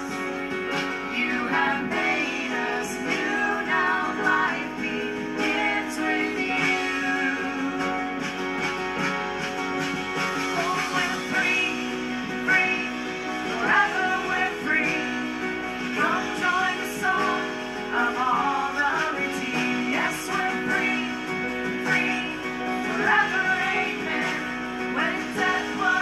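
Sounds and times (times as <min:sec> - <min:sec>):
drums: 0:00.0 - 0:26.0
strummed acoustic guitar: 0:00.0 - 0:26.0.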